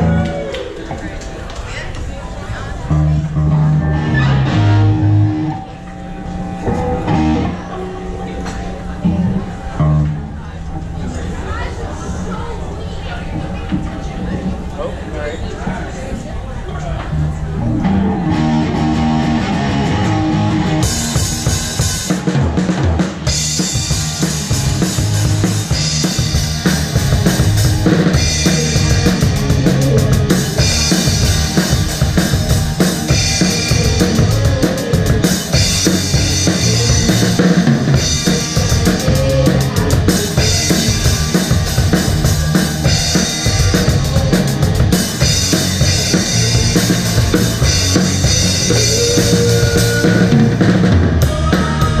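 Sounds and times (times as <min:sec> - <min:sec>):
live rock band playing: 0:03.0 - 0:05.7, 0:06.7 - 0:07.7, 0:17.8 - 0:52.0
drum kit rock beat: 0:18.3 - 0:52.0.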